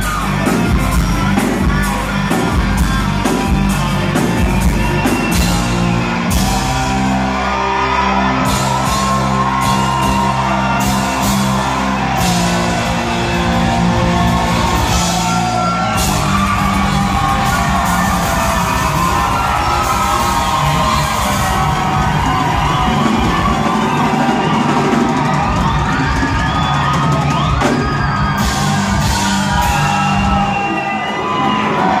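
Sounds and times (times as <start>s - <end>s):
crowd whooping and yelling: 0.0s - 32.0s
live rock band playing: 0.0s - 32.0s.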